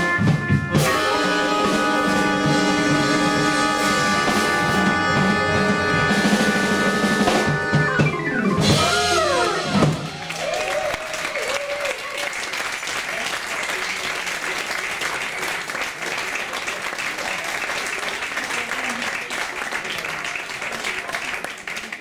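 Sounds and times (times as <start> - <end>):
crowd voices: 0.0 - 22.0
audience applauding: 0.9 - 22.0.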